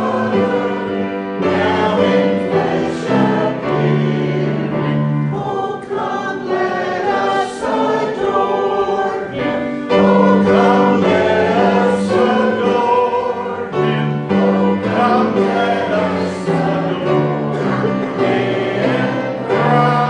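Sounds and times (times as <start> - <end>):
choir singing a hymn: 0.0 - 20.0.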